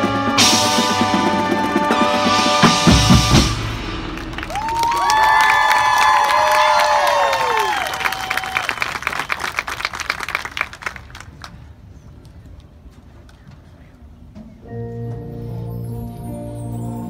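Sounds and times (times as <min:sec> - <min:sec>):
heavy drum hits: 0:02.3 - 0:05.0.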